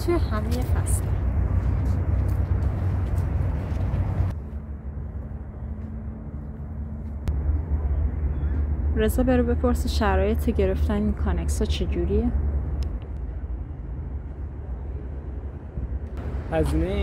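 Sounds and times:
outdoor rushing rumble: 0.0 - 17.0.

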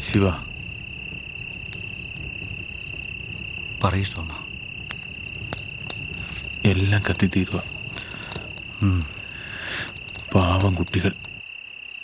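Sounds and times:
crickets chirping: 0.0 - 12.0
man speaking: 3.8 - 4.5, 6.6 - 7.8, 10.3 - 11.2.

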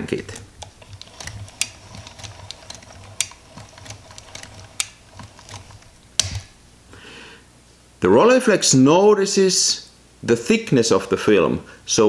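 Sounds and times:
camera crank clicking: 0.4 - 6.6.

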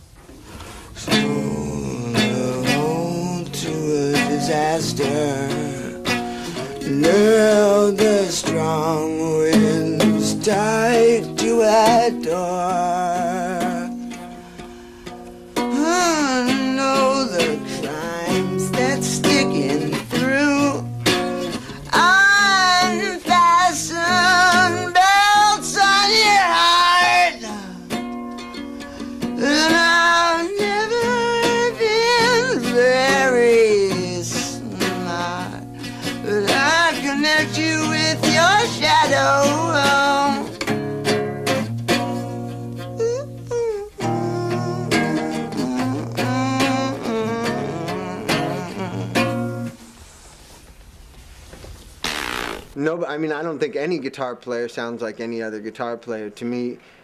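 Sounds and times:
acoustic guitar: 0.0 - 57.0
man singing: 1.0 - 14.2, 15.7 - 28.0, 29.3 - 40.7, 42.9 - 49.8.

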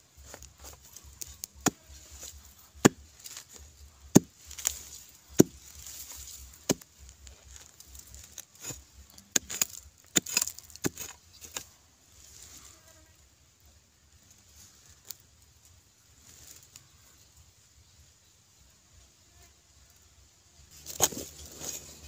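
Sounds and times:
metal blade chopping into soil: 0.2 - 11.7, 20.8 - 22.0.

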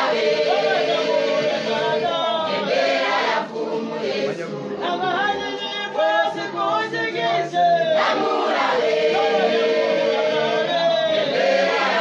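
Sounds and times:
congregation singing in chorus: 0.0 - 12.0.

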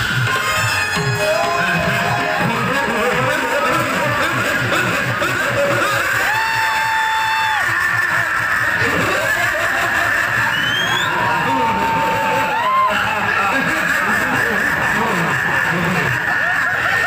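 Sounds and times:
amplified music with fast beat: 0.0 - 17.0
voices over music: 0.0 - 17.0.

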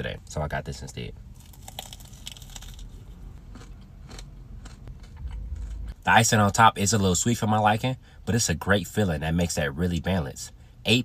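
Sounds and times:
low rumble: 1.1 - 8.3
crunchy bites and chewing: 1.4 - 6.0.

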